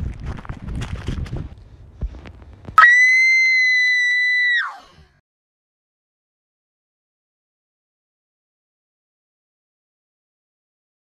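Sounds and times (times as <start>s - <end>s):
rustling and crackling: 0.0s - 2.8s
loud shrill high tone: 2.8s - 4.8s.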